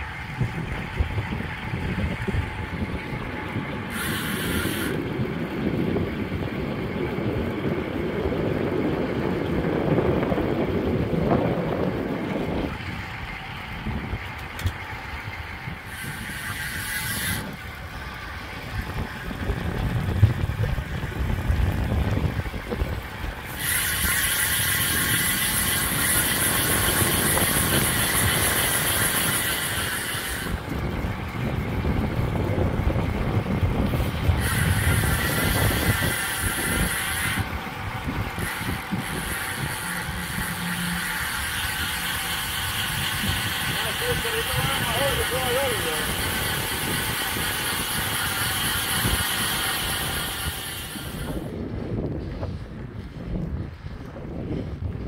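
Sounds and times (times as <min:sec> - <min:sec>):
wind buffeting microphone: 0:00.0 - 0:55.0
steady high buzz: 0:14.8 - 0:51.5.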